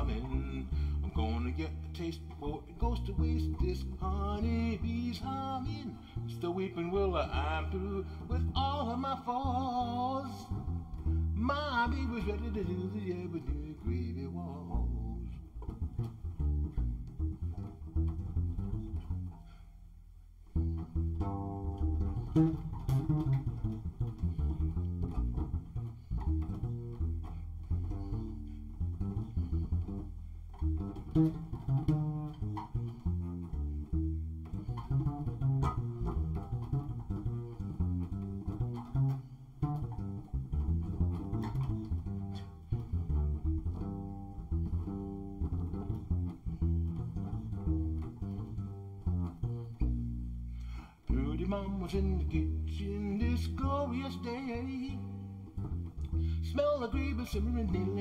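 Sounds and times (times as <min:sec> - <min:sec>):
double bass plucked notes: 0:00.0 - 0:58.0.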